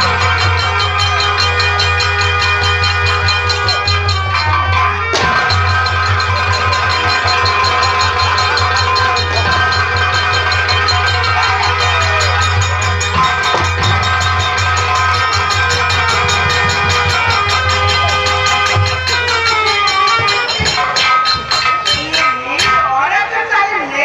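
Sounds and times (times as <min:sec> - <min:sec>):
fast kettle drum drumming: 0:00.0 - 0:22.8
held melody instrument tones: 0:00.0 - 0:23.7
dholak drumming: 0:00.0 - 0:24.0.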